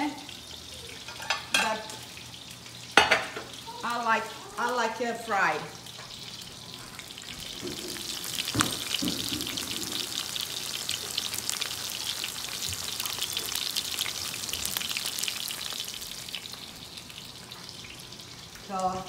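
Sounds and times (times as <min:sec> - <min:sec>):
meatballs sizzling in oil: 0:00.0 - 0:19.0.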